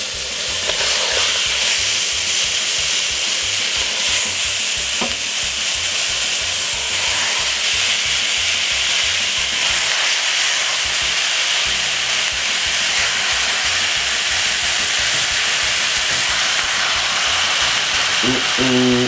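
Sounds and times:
chicken sizzling in hot oil: 0.0 - 19.0.

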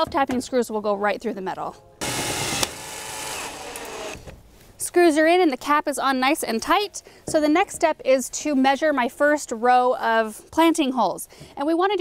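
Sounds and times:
cordless drill driving screw into metal: 2.0 - 4.3.

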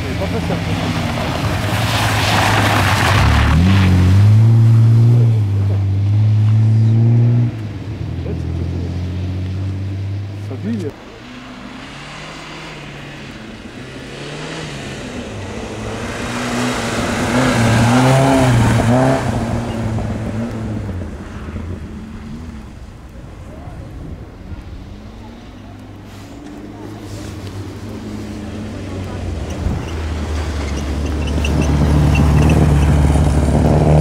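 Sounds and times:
rally car engine revving: 0.0 - 22.8, 24.2 - 34.0.

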